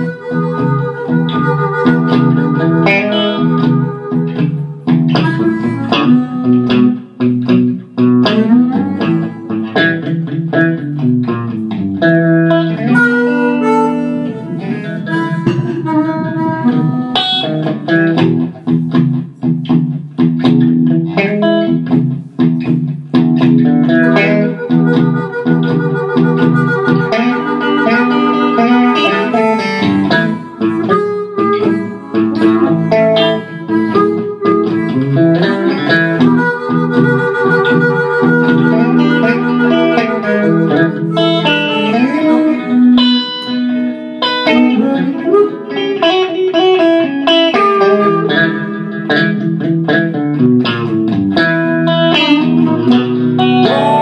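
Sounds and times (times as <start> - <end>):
harmonica notes: 0.0 - 18.6, 23.4 - 49.5, 51.6 - 54.0
blues guitar: 0.0 - 54.0.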